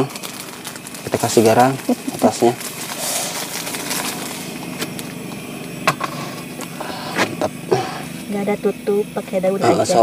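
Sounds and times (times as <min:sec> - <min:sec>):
gas stove burner hissing: 0:00.0 - 0:10.0.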